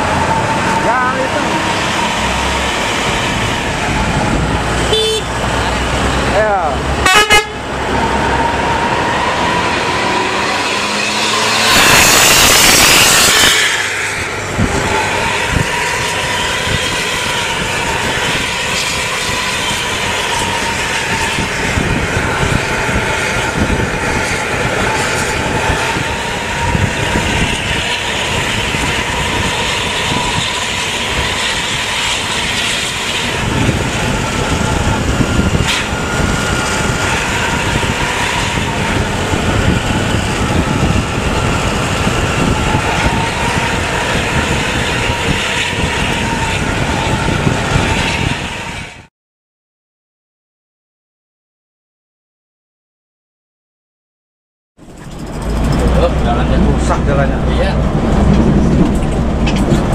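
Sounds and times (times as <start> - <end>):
bus engines: 0.0 - 49.1, 54.8 - 59.9
horn toot: 4.8 - 5.4, 7.0 - 7.7
steady high whine: 54.8 - 59.9.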